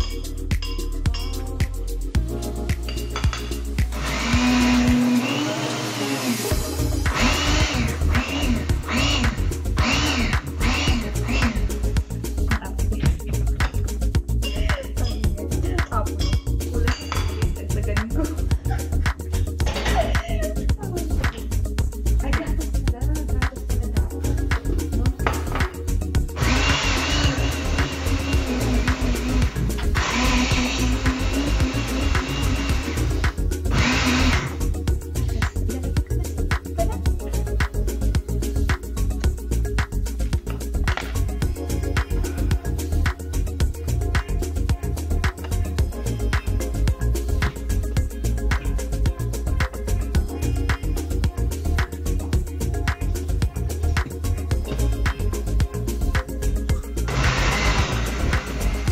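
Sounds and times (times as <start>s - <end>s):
background music: 0.0s - 58.9s
blender motor pulsing: 3.8s - 11.9s, 26.4s - 34.7s, 57.1s - 58.9s.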